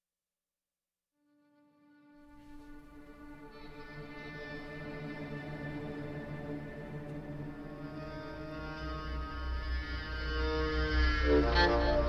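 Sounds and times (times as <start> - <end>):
dark film score drone: 2.5 - 12.0.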